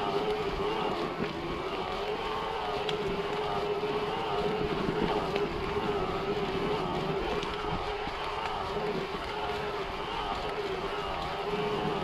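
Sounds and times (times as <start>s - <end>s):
faint ticks: 0.0s - 12.0s
mountain bike rolling on dirt: 0.0s - 12.0s
wind buffeting microphone: 0.0s - 12.0s.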